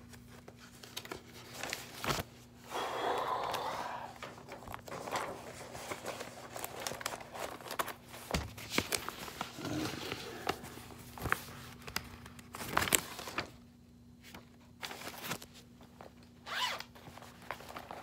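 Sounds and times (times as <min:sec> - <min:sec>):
wallet zipper being pulled: 0:16.5 - 0:16.8.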